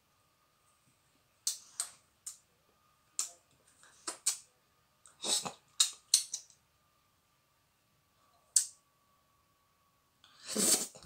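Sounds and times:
faint high hum: 0.0s - 11.0s.

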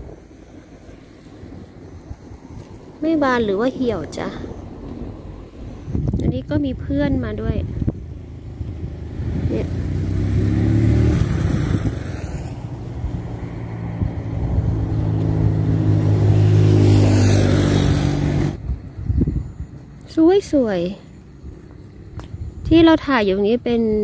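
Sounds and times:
vehicle engine running: 0.0s - 23.7s.

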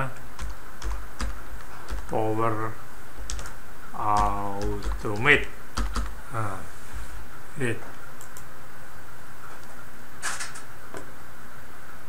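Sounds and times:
computer keyboard typing: 0.4s - 2.2s, 3.2s - 6.2s.

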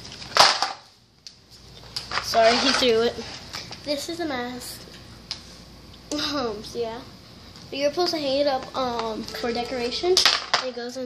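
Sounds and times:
package rustle and thud: 0.0s - 0.9s.

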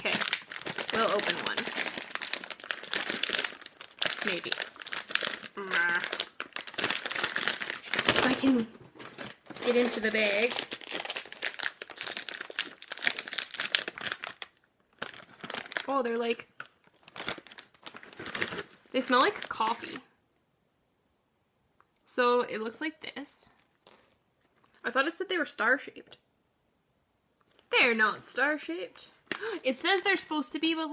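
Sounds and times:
plastic snack bag crackling: 0.0s - 20.0s, 23.6s - 24.8s.

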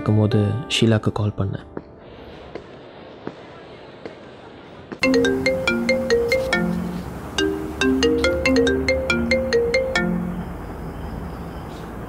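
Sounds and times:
phone ringtone melody: 5.0s - 10.6s.

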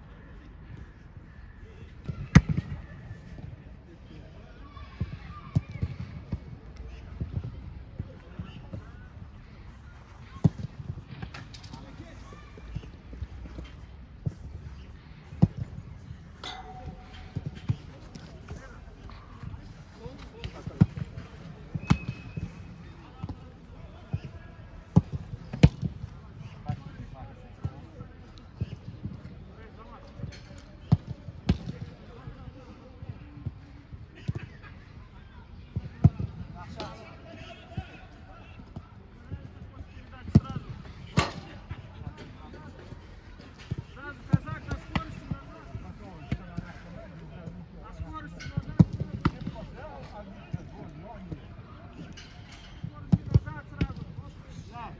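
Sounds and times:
footballs being struck: 16.4s - 18.8s, 19.5s - 23.4s, 24.9s - 26.8s, 30.2s - 31.9s, 40.2s - 42.2s, 43.6s - 46.8s, 48.2s - 50.7s, 52.1s - 54.3s.

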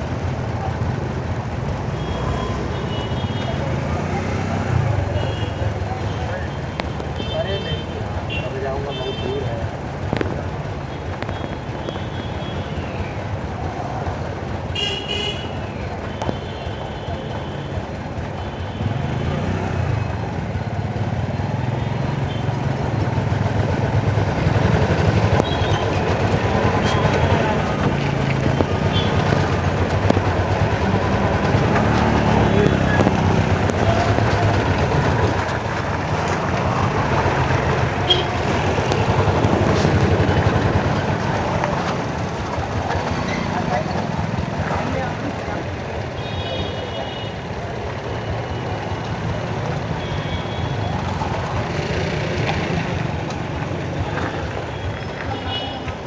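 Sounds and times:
vehicle engines running: 0.0s - 56.0s
car horn toot: 38.0s - 38.7s.

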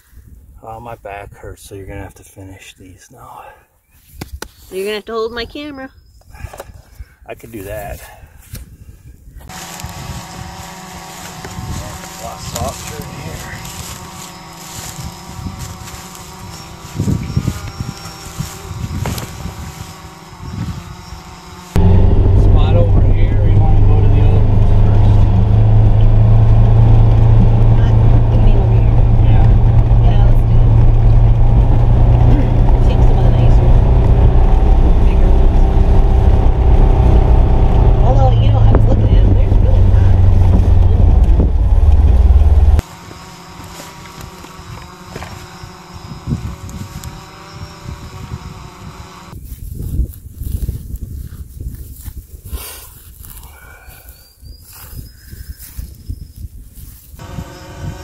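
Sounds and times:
vehicle engine drone: 9.4s - 51.4s, 56.9s - 58.0s.

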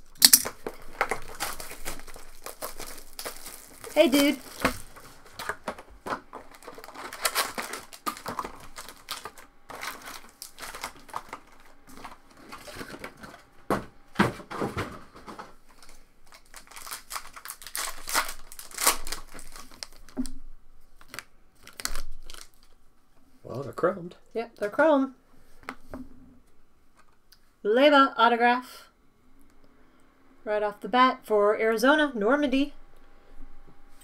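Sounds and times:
foil wrappers crinkling: 0.0s - 13.5s, 14.6s - 22.8s.

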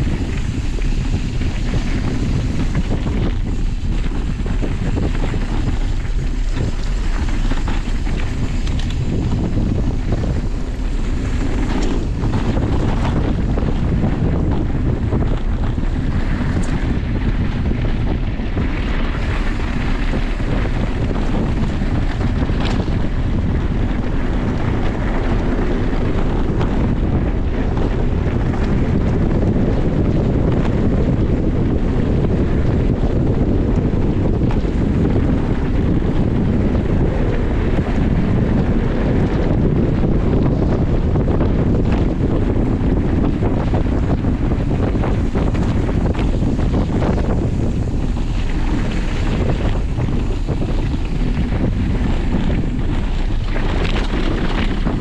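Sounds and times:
bike tyres rolling over gravel: 0.0s - 55.0s
wind buffeting microphone: 0.0s - 55.0s.

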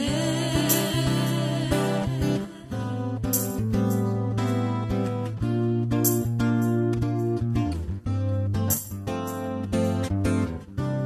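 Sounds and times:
strummed acoustic guitar chords: 0.0s - 11.0s.

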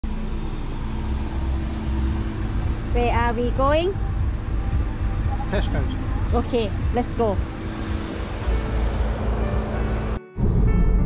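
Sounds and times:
car engine idling: 0.0s - 10.2s.

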